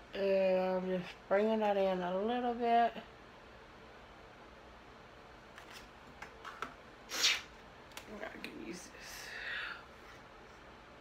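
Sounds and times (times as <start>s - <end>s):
short loud hissing rush: 7.1s - 7.5s.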